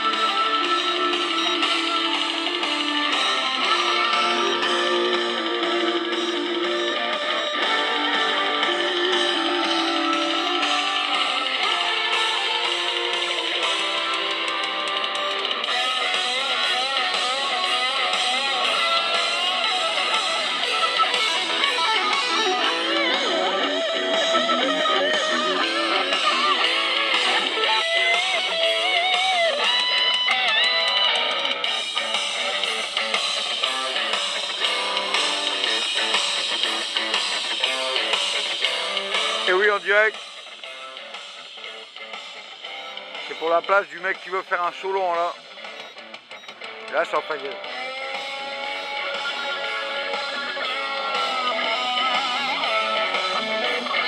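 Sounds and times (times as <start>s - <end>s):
guitar held notes: 0.0s - 14.3s, 15.4s - 31.7s
guitar solo with bent notes: 0.0s - 40.6s, 46.0s - 54.0s.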